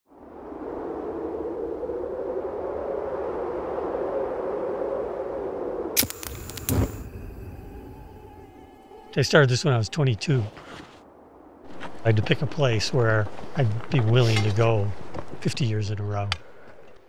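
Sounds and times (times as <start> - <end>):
rushing whoosh of ambience: 0.1 - 10.4
sharp clicks: 6.0 - 7.0.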